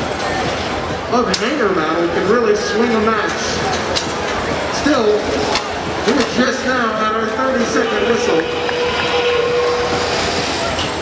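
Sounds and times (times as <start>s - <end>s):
arena crowd din: 0.0s - 11.0s
robots: 7.6s - 11.0s
steady whistle tone: 7.6s - 11.0s.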